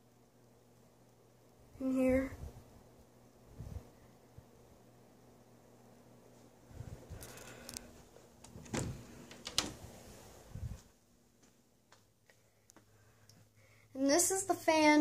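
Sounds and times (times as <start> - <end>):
ceiling fan humming: 0.0 - 15.0.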